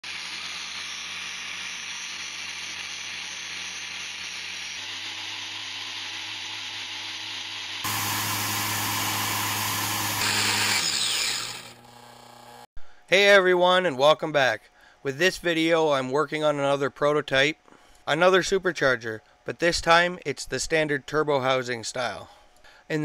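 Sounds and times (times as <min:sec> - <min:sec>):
compressor whine: 0:00.0 - 0:12.7.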